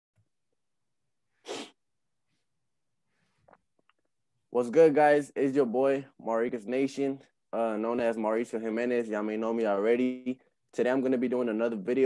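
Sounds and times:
burst of breath into microphone: 0:01.4 - 0:01.8.

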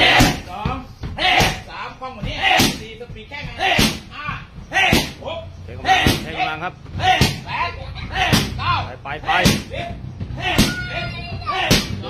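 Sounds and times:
kicks landing on pads: 0:00.0 - 0:06.4, 0:09.3 - 0:12.0.

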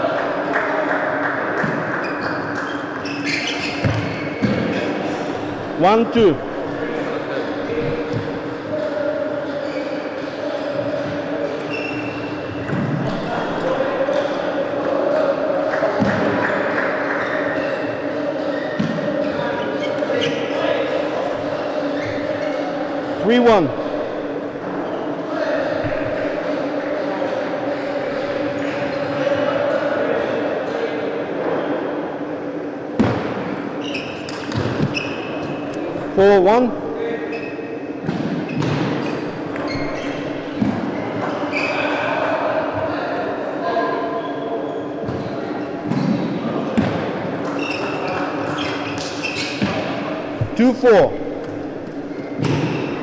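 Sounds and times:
murmuring voices: 0:04.6 - 0:31.6.

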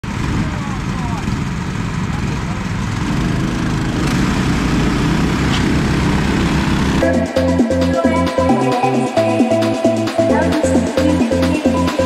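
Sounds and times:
kart engines idling: 0:00.0 - 0:12.0.

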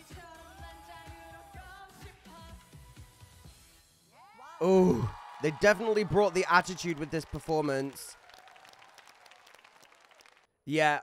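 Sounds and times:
audience applause: 0:05.0 - 0:10.5.

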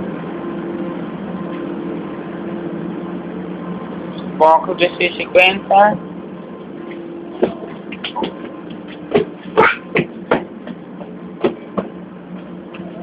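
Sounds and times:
train hum: 0:00.0 - 0:13.0
sharp knocks and clicks: 0:07.4 - 0:09.3, 0:09.9 - 0:12.0.

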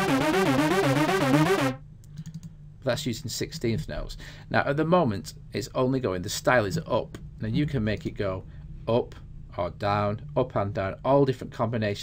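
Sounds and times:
arpeggiated synth notes: 0:00.0 - 0:01.8.

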